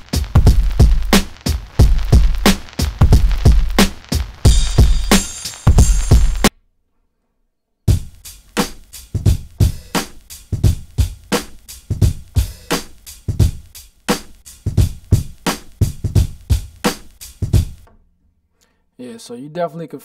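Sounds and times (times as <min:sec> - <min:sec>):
boom bap drum loop: 0:00.0 - 0:06.5, 0:07.9 - 0:17.9.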